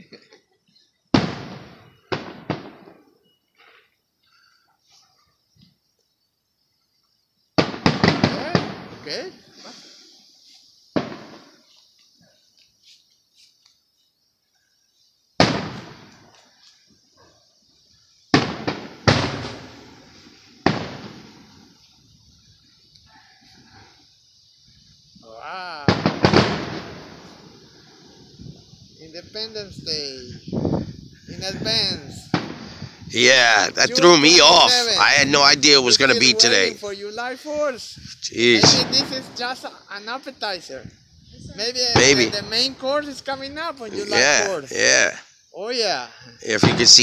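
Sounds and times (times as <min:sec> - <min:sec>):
firework bursting with cracks: 0:01.1 - 0:03.1, 0:07.6 - 0:10.1, 0:10.7 - 0:11.8, 0:15.4 - 0:16.4, 0:18.3 - 0:21.9, 0:25.8 - 0:29.0, 0:31.6 - 0:36.9, 0:38.3 - 0:39.8, 0:41.6 - 0:43.2, 0:46.5 - 0:47.0.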